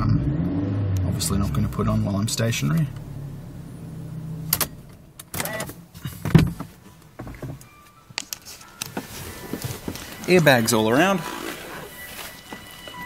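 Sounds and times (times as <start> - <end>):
car engine idling: 1.0 - 7.4.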